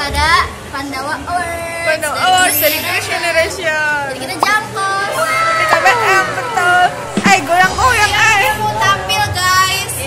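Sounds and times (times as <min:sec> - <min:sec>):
teenage girls talking: 0:00.0 - 0:10.0.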